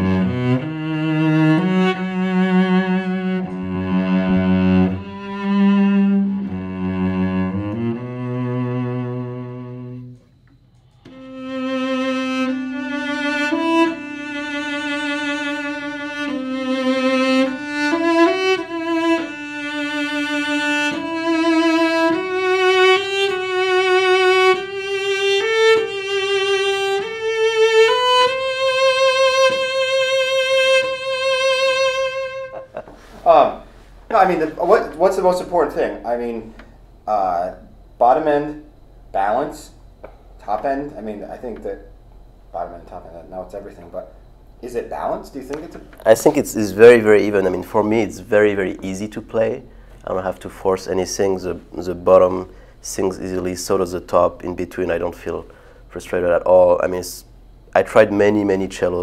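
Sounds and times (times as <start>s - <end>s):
bowed cello: 0.0s - 10.4s, 11.0s - 36.6s.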